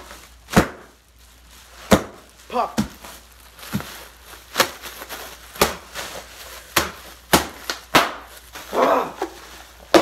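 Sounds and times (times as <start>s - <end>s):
bubble wrap popping: 0.0s - 10.0s
plastic crinkling: 0.0s - 10.0s.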